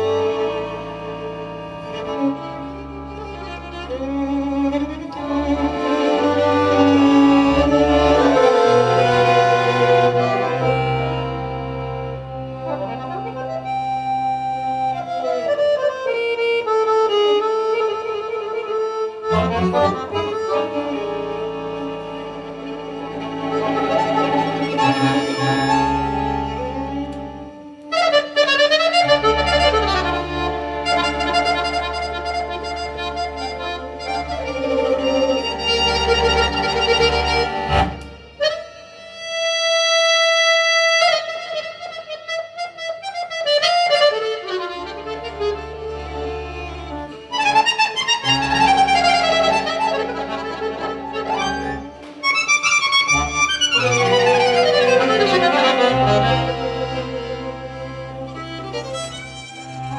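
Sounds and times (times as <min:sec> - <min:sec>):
accordion and violin duet: 0:00.0 - 0:59.9.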